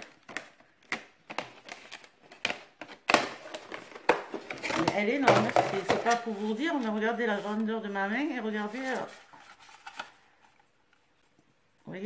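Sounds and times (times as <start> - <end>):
plastic packaging crackling: 0.0 - 11.3.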